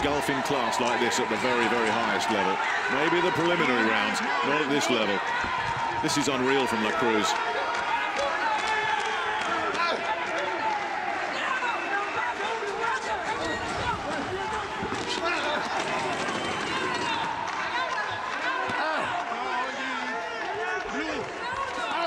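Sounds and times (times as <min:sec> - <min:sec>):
people shouting: 0:00.0 - 0:22.0.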